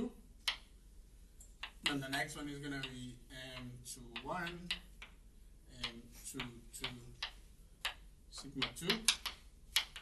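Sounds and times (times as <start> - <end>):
chalk tapping on blackboard: 0.4 - 0.7, 1.5 - 10.0.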